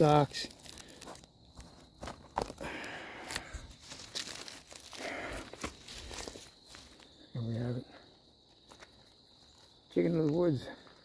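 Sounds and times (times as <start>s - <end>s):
fungus snapping and tearing: 0.0s - 6.8s
leaves and twigs rustling: 0.0s - 7.7s, 8.4s - 11.0s.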